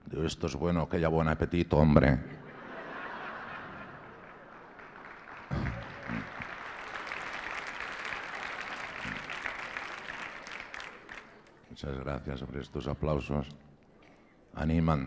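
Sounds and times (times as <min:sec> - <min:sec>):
audience applauding: 0:03.2 - 0:11.7.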